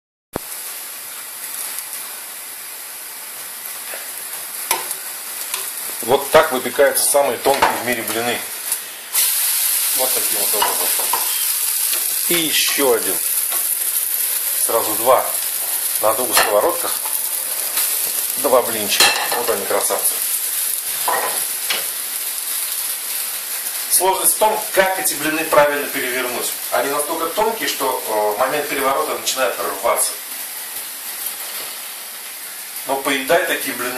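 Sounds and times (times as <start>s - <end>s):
batter sizzling in frying pans: 0.4s - 33.9s.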